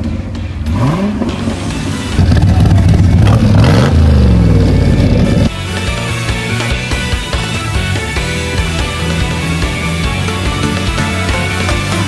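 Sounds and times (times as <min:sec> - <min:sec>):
car engine revving: 0:00.0 - 0:05.5
music: 0:00.0 - 0:12.0.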